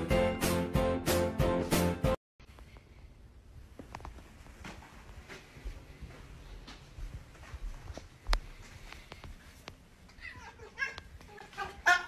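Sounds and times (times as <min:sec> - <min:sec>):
cat calling: 0:10.2 - 0:12.0.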